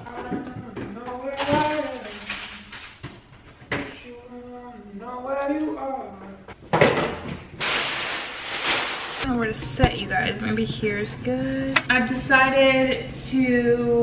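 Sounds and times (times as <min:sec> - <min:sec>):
groceries rustling: 0:07.6 - 0:11.2
woman's voice: 0:09.2 - 0:14.0.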